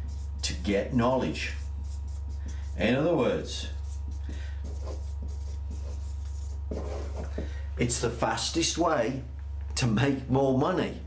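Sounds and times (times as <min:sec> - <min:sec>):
marker scratching on whiteboard: 0:00.0 - 0:03.1, 0:03.7 - 0:07.6
steady low hum: 0:00.0 - 0:11.0.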